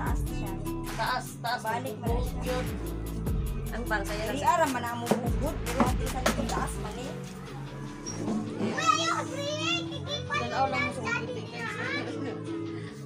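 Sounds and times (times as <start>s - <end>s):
background music: 0.0s - 13.0s
children squealing and calling out: 8.1s - 10.5s.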